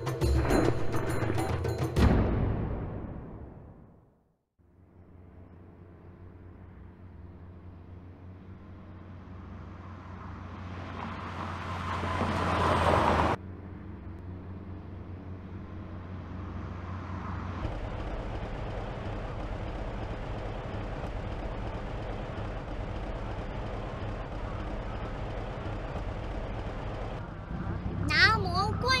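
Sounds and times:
steady engine drone: 4.6 - 29.0
truck engine driving by: 4.6 - 29.0.

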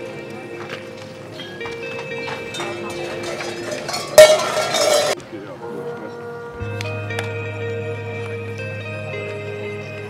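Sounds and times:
metallic clanging burst: 2.5 - 5.2.

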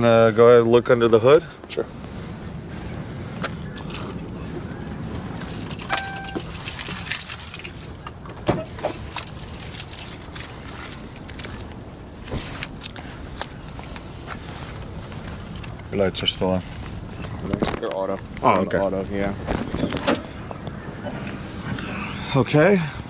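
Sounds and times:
keys jangling: 5.4 - 11.6
short electronic beep: 5.9 - 6.4.

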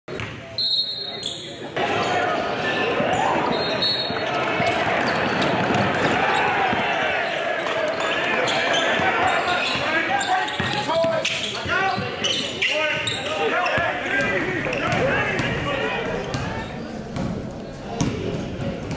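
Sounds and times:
basketball bouncing on court: 0.1 - 0.4, 10.5 - 12.2, 13.0 - 18.9
echoing voices: 1.5 - 18.9.

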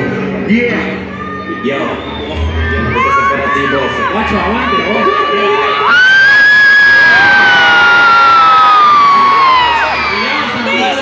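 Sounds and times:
audience screaming and cheering: 0.7 - 11.0
high-pitched scream: 1.1 - 10.4.

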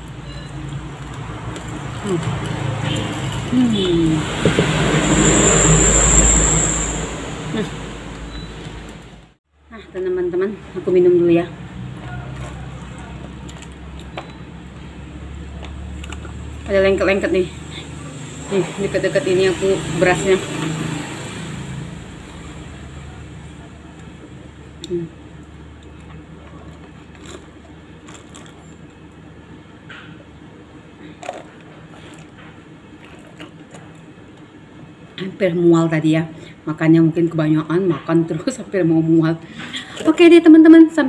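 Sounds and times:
low rumbling hum: 0.0 - 35.2.

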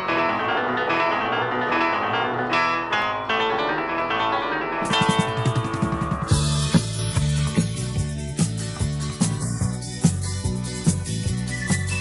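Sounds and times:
instrumental keyboard backing track: 0.0 - 12.0.

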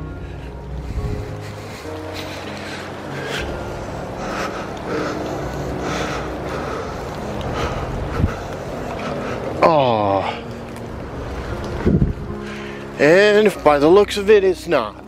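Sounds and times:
footsteps on wet leafy trail: 0.0 - 15.0
heavy rain hissing: 0.0 - 15.0
soft background music: 0.0 - 15.0.

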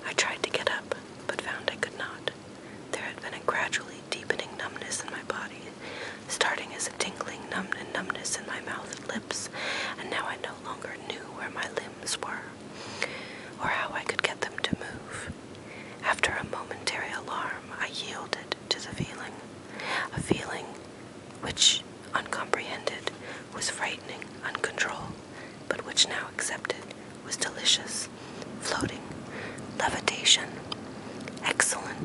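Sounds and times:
person whispering: 0.0 - 2.3, 2.9 - 12.5, 13.6 - 15.4, 16.0 - 20.8, 21.4 - 29.1, 29.8 - 30.6, 31.4 - 32.0.

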